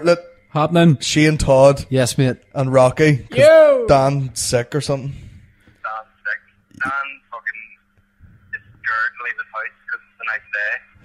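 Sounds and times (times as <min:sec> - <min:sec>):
men talking on phone call: 0:00.0 - 0:11.0
low hum: 0:06.6 - 0:11.0.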